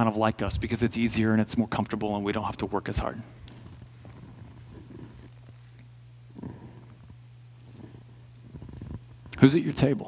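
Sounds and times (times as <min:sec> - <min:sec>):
low room hum: 0:00.0 - 0:10.0
faint soft sounds: 0:01.1 - 0:09.8.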